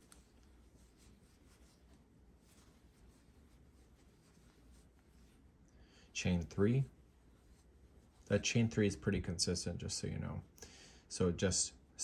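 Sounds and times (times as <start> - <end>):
yarn rustling on crochet hook: 0.0 - 9.3.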